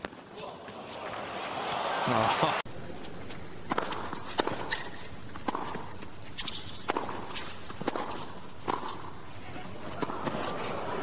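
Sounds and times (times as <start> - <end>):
racket hitting ball: 3.7 - 9.2, 9.9 - 10.6
low crowd noise: 9.0 - 11.0.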